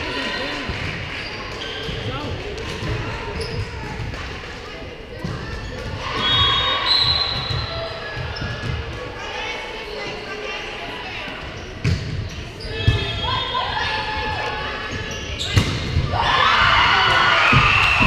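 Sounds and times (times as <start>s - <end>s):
voices echoing in a gymnasium: 0.0s - 18.0s.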